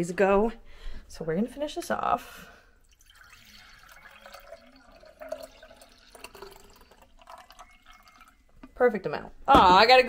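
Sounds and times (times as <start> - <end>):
faint trickle of liquid: 2.8 - 8.8.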